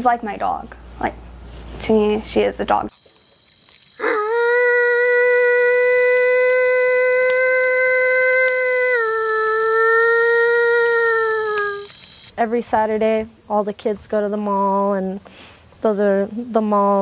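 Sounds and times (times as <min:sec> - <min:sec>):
long wolf-like howl: 0:04.0 - 0:11.9.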